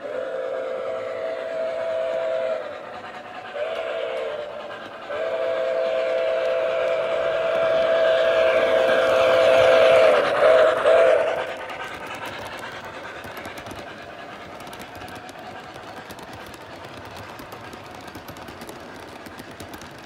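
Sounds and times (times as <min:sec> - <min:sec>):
steam whistle blasts: 0:00.0 - 0:02.9, 0:03.5 - 0:11.4
model train rumbling on track: 0:00.0 - 0:20.0.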